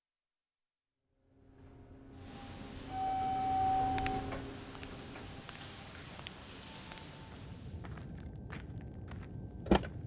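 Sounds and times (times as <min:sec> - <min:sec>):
high held tone: 0:02.2 - 0:05.6.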